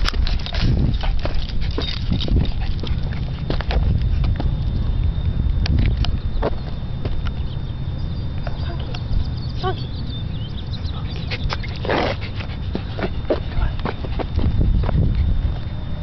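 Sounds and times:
dog tags jingling and claws clicking: 0:00.0 - 0:04.3
low microphone rumble: 0:00.0 - 0:16.0.

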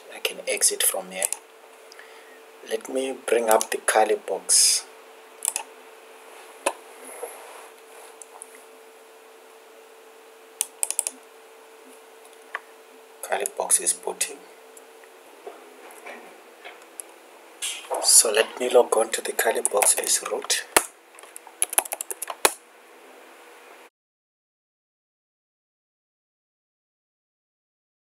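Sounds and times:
faint steady hum: 0:00.0 - 0:23.9
keyboard keystrokes: 0:05.4 - 0:05.7, 0:10.6 - 0:11.2, 0:21.6 - 0:22.6
sharp computer mouse clicks: 0:05.4 - 0:05.7, 0:10.6 - 0:11.2.

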